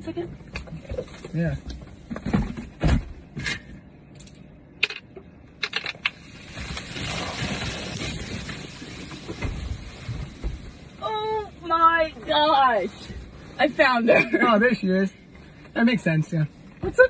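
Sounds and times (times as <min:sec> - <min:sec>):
soda foaming out of bottle: 0:06.2 - 0:10.0.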